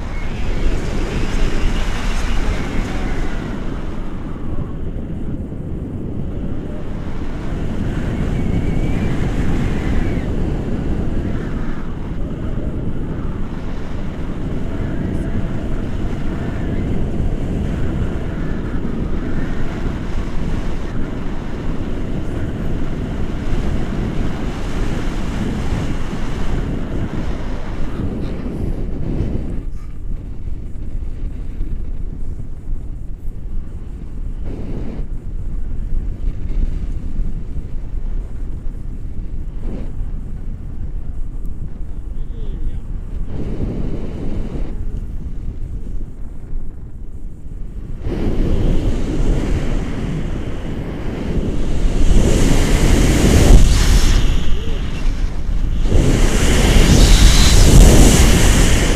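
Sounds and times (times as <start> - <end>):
wind buffeting microphone: 0.0 - 58.9.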